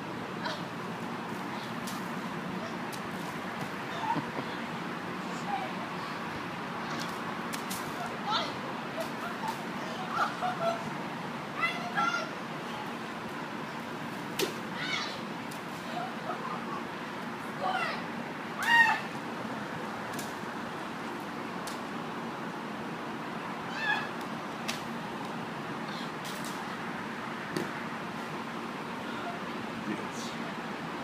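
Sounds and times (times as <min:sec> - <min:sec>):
outdoor background noise: 0:00.0 - 0:31.0.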